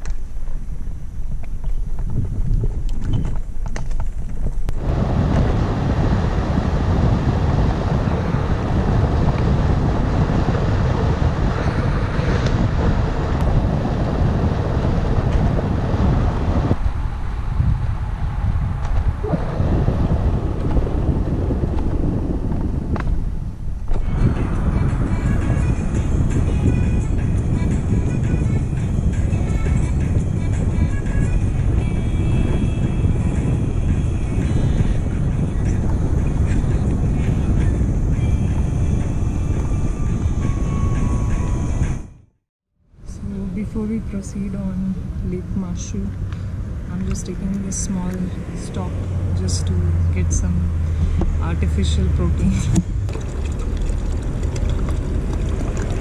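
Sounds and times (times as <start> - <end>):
wind rumble on microphone: 0.0 - 56.0.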